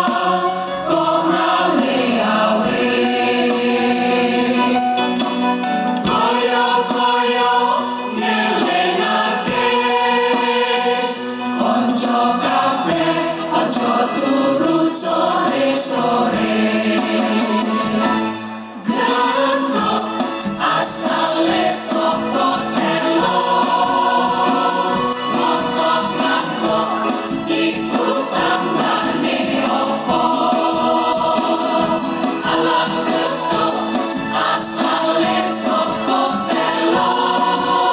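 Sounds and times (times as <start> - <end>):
women's choir singing: 0.0 - 5.0, 6.0 - 18.2, 18.8 - 37.9.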